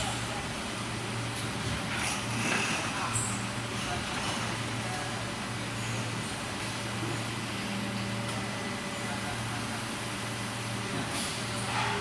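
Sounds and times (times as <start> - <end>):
machine humming and hissing: 0.0 - 12.0.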